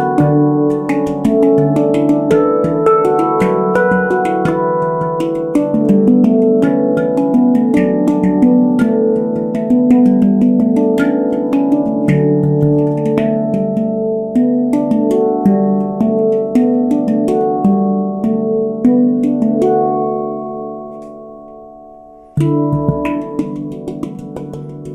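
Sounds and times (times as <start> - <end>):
handpan notes ringing: 0.0 - 24.9.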